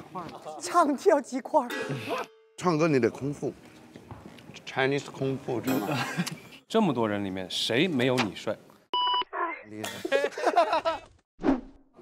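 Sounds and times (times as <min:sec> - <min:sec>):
people laughing: 0:05.6 - 0:06.6, 0:09.8 - 0:11.2.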